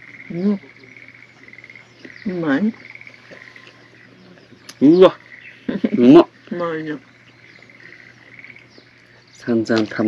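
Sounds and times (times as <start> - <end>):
light chirping: 0.0 - 10.0
steady low hum: 0.0 - 10.0.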